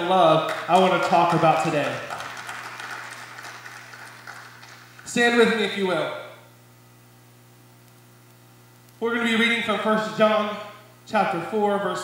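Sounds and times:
steady low hum: 0:00.0 - 0:12.0
light scattered applause: 0:00.4 - 0:05.3.

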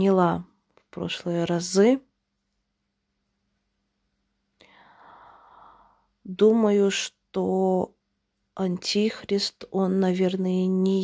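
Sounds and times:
woman breathing in: 0:04.6 - 0:06.2.

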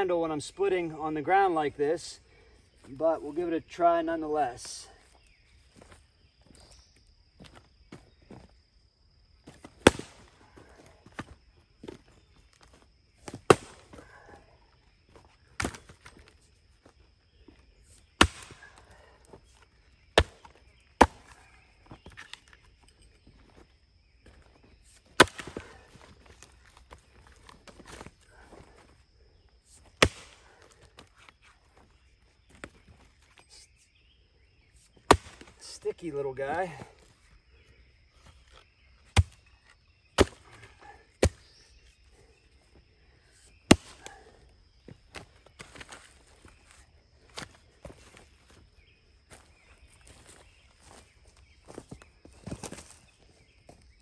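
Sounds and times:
axe striking wood: 0:09.8 - 0:10.3, 0:18.2 - 0:18.6, 0:20.2 - 0:21.4, 0:25.2 - 0:25.6, 0:30.0 - 0:30.4, 0:35.1 - 0:35.6, 0:39.1 - 0:39.4, 0:40.2 - 0:40.5.

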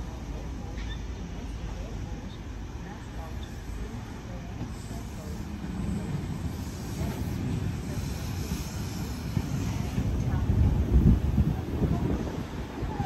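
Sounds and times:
electric train rumbling: 0:00.0 - 0:13.0.

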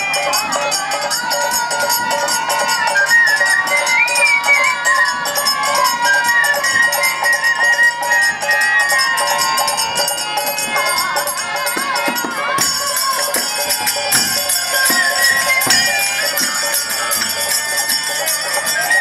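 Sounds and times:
bamboo flute melody: 0:00.0 - 0:12.0, 0:12.7 - 0:19.0
hand drums beating: 0:00.0 - 0:19.0
harmonium drone: 0:00.0 - 0:19.0
small hand cymbals: 0:00.0 - 0:19.0
women singing a chant: 0:00.0 - 0:19.0.

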